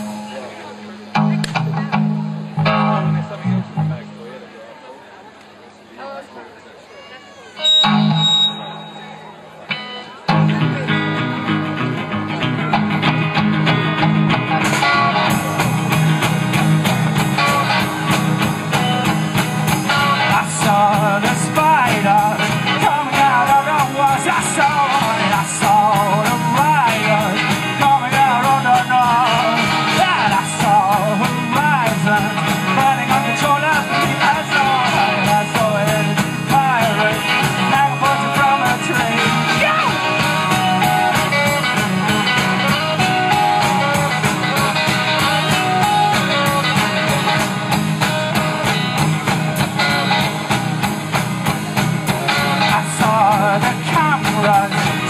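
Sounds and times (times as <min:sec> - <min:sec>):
bass guitar: 0:00.0 - 0:04.5, 0:07.6 - 0:55.0
rock band playing: 0:00.0 - 0:04.5, 0:07.5 - 0:55.0
electric guitar: 0:00.0 - 0:04.6, 0:07.0 - 0:55.0.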